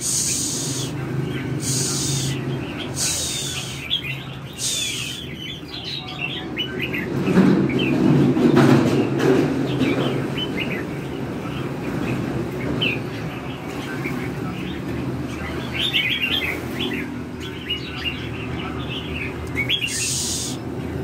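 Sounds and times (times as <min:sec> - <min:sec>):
birds chirping: 0:00.0 - 0:21.0
low rumbling noise with knocks: 0:07.2 - 0:10.3.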